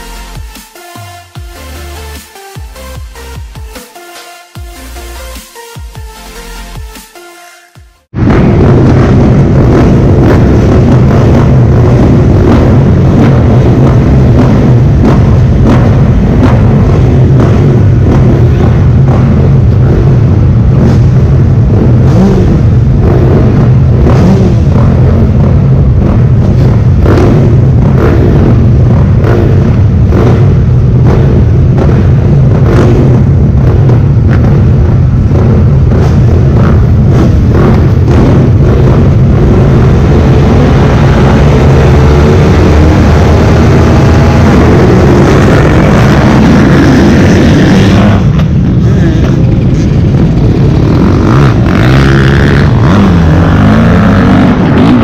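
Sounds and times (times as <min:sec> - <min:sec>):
motorbike engines revving hard: 0:08.1 - 0:55.0
motorbikes idling with throttle blips: 0:09.4 - 0:55.0.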